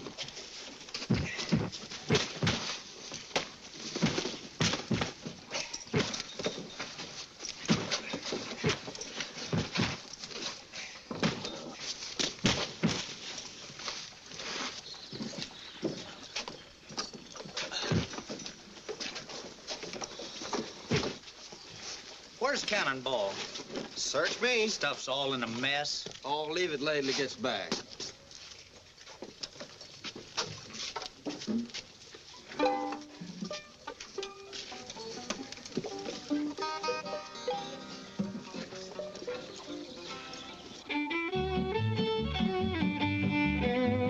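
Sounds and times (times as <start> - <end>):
sacks thudding onto wooden wagon: 0.9 - 16.1, 19.8 - 21.3.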